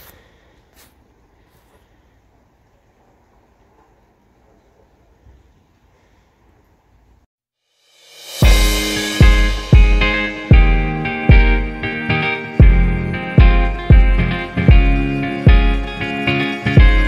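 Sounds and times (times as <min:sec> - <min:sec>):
faint outdoor background noise: 0:00.0 - 0:07.3.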